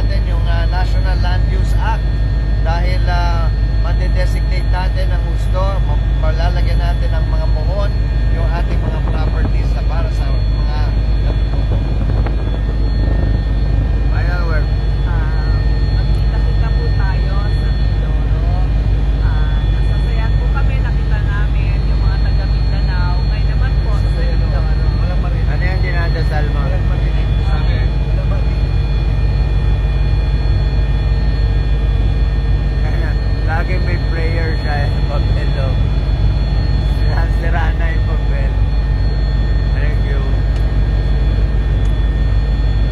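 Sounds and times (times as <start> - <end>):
helicopter rotor and engine drone: 0.0 - 42.9
high whine: 0.0 - 42.9.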